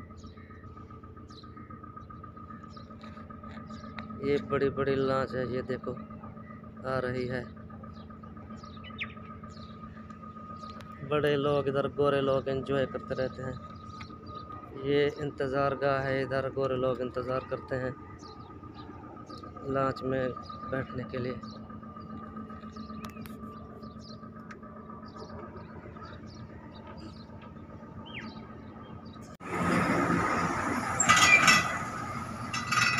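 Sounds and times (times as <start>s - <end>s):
constant high whine: 0.0s - 32.9s
low outdoor rumble: 0.0s - 32.9s
steady background hum: 0.0s - 32.9s
truck engine and tyres passing: 0.0s - 32.9s
high bird chirps: 7.4s - 11.2s, 17.2s - 29.4s
steel deck rattling and clinking: 30.4s - 32.9s.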